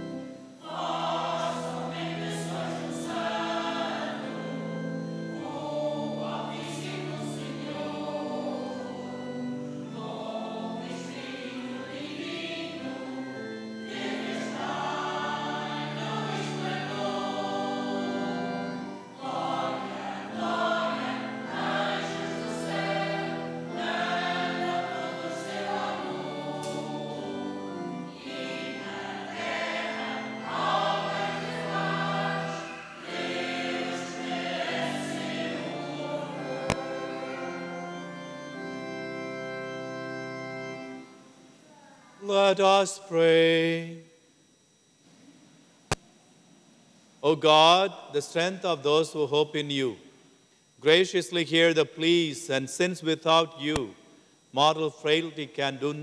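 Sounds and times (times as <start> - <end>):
choir singing a hymn: 0.0 - 41.5.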